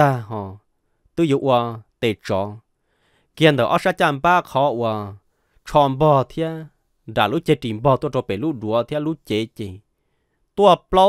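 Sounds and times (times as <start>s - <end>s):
man narrating: 0.0s - 2.7s, 3.4s - 9.8s, 10.6s - 11.0s.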